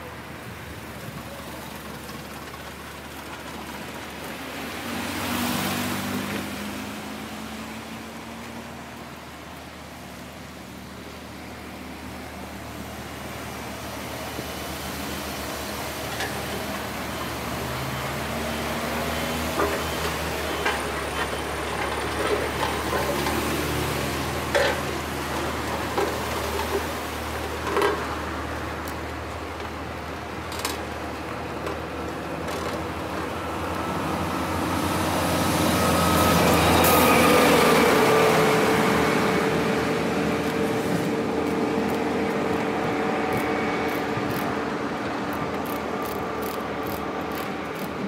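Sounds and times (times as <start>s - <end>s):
vehicles passing: 0.0s - 48.0s.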